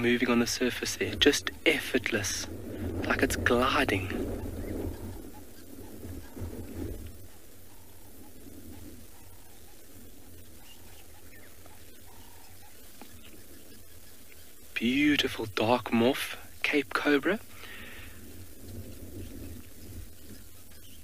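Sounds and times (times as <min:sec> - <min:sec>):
low rumble: 0:00.0 - 0:14.8, 0:17.3 - 0:21.0
faint bird calls: 0:00.0 - 0:21.0.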